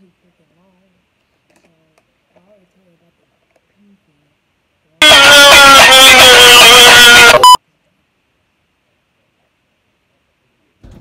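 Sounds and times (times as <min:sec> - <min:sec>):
loud distorted yell: 0:05.0 - 0:07.6
electronic bleep: 0:06.9 - 0:07.6.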